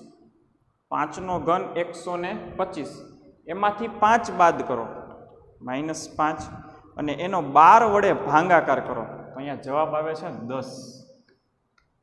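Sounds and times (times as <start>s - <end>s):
man speaking: 0.9s - 11.0s.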